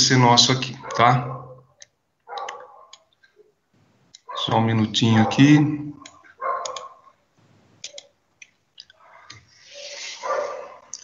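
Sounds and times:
computer mouse clicks: 1.8s - 3.3s, 6.0s - 7.0s, 7.8s - 9.5s.

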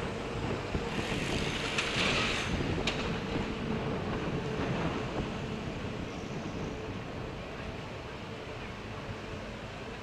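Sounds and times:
wind on microphone: 0.0s - 9.3s
road noise on wet street: 0.0s - 10.0s.

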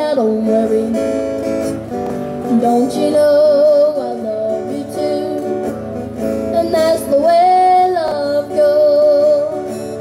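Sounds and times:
boy singing: 0.0s - 1.2s, 2.5s - 5.7s, 6.5s - 9.8s
strummed acoustic guitar: 0.0s - 10.0s.

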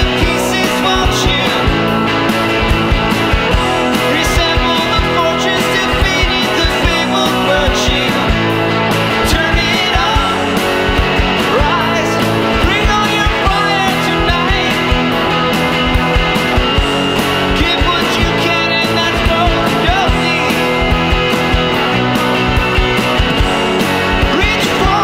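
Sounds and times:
indie rock band playing: 0.0s - 25.0s.

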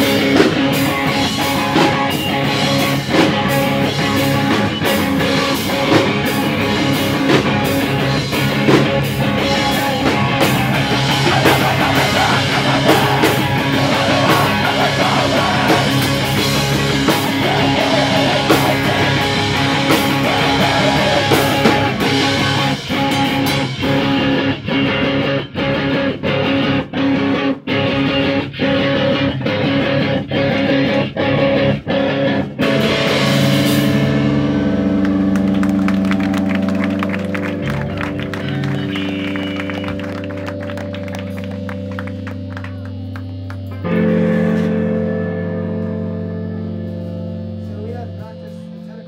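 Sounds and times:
distorted guitar chords ringing: 0.0s - 49.0s
rock band playing loud stabs: 0.0s - 49.0s.

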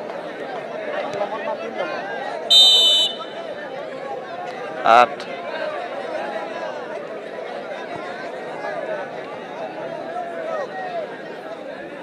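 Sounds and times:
crowd chatter: 0.0s - 12.0s
referee's whistle blast: 2.5s - 3.5s.

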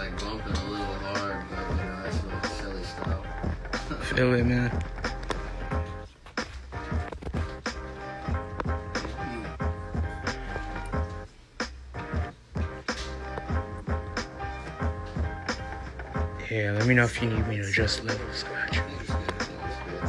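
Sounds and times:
electronic instrumental beat: 0.0s - 20.0s.

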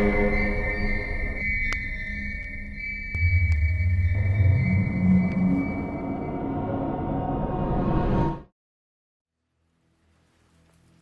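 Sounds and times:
deep bass drone: 0.0s - 7.7s.

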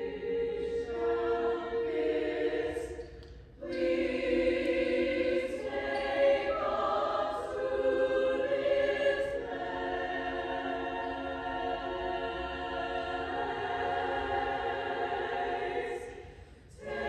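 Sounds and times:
small choir singing chords: 0.0s - 17.0s.

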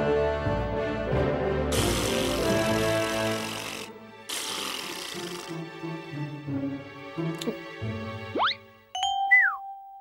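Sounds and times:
cartoon music with sustained notes: 5.1s - 10.0s.

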